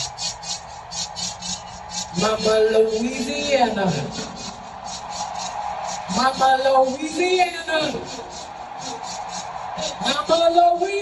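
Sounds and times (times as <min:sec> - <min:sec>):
rhythmic percussion beat: 0:00.0 - 0:10.4
faint crowd noise: 0:00.0 - 0:11.0.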